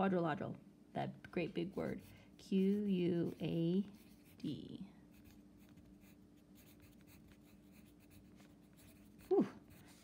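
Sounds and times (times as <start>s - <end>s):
pencil scratching on paper: 1.7s - 10.0s.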